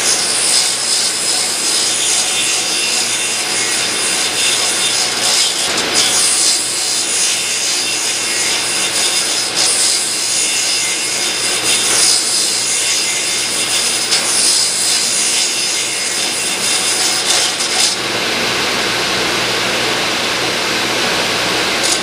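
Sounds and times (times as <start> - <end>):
table saw cutting wood: 0.0 - 22.0
shop vacuum rushing: 16.4 - 22.0.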